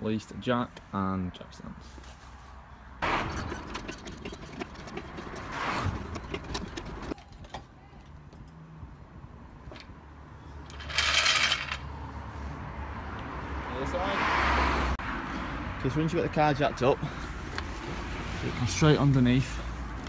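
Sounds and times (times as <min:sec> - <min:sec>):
tools clicking and scraping: 0:03.1 - 0:08.6, 0:10.6 - 0:11.9.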